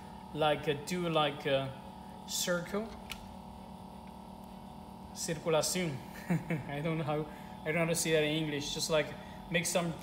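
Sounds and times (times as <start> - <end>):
freezer humming: 0.0 - 10.0.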